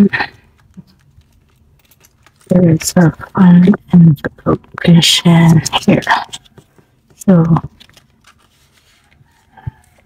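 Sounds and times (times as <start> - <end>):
banknotes rustling in plastic envelope: 0.0 - 10.0.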